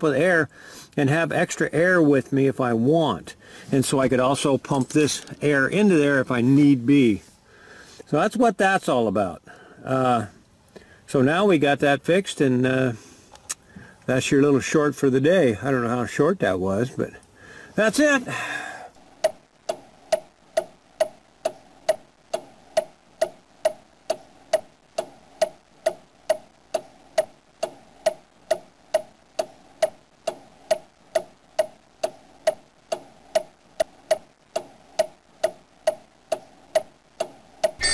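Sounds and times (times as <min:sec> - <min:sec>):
clock ticking: 0:19.2 - 0:37.9.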